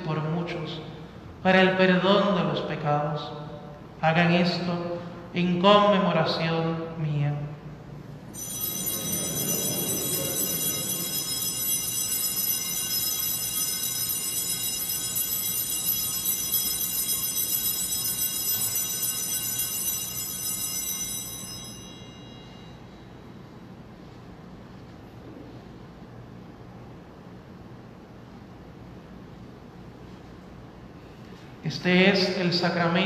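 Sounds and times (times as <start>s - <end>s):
altar bells ringing: 8.2s - 23.5s.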